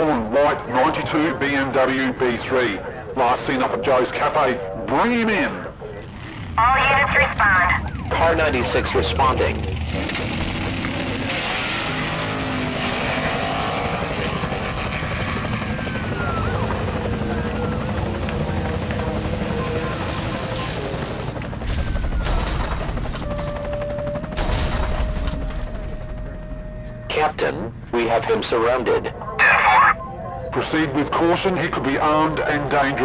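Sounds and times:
vehicle chase sound effects: 6.0s - 27.1s.

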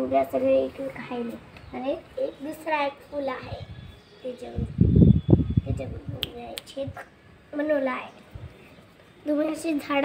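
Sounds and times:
girl speaking: 0.3s - 4.8s, 5.6s - 8.2s, 9.2s - 10.0s.

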